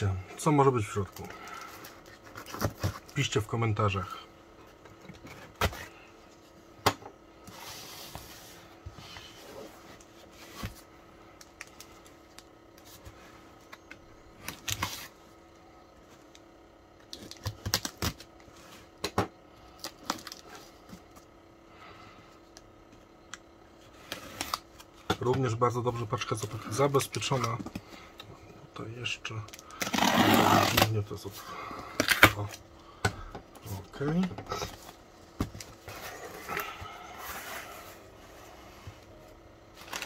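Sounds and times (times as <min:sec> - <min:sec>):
faint steady hum: 0:00.0 - 0:40.0
cardboard scraping rustles: 0:07.5 - 0:10.9, 0:34.5 - 0:39.1.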